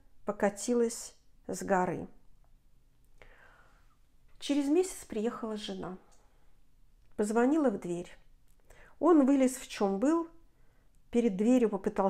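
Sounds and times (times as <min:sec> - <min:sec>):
person breathing in: 0:03.2 - 0:04.0.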